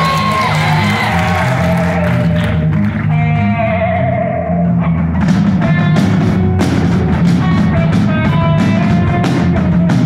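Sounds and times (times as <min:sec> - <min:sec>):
bass guitar line: 0:00.0 - 0:10.0
drums: 0:00.0 - 0:10.0
live rock band playing: 0:00.0 - 0:10.0.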